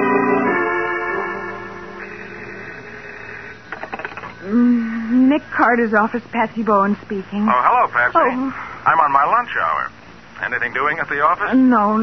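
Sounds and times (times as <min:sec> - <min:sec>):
telephone bell ringing: 0:00.0 - 0:02.2
organ music: 0:00.0 - 0:03.8.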